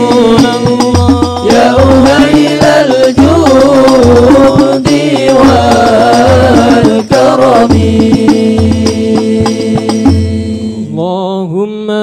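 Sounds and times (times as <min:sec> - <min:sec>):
group singing with percussion: 0:00.0 - 0:11.1
man chanting alone: 0:00.0 - 0:12.0.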